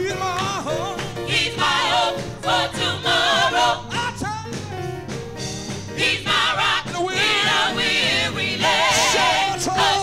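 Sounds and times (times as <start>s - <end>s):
gospel choir singing in harmony: 0.6s - 4.2s, 5.4s - 10.0s.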